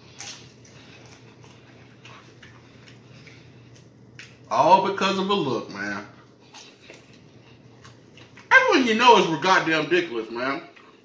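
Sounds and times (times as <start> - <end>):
person chewing: 0.0 - 4.5, 6.2 - 8.5.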